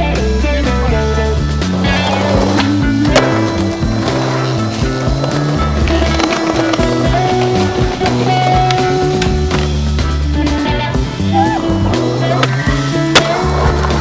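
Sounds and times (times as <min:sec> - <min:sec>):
music: 0:00.0 - 0:14.0
skateboard wheels rolling on concrete: 0:00.0 - 0:14.0
skateboard clacking: 0:00.6 - 0:14.0.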